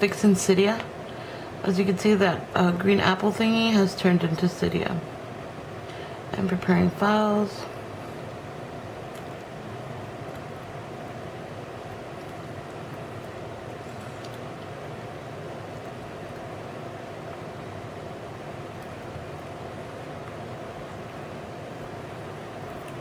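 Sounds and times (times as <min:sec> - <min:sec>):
room hum and hiss: 0:00.0 - 0:23.0.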